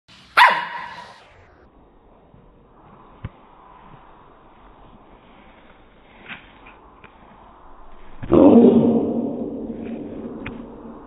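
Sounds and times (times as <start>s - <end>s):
dog barking: 0.4s - 1.2s.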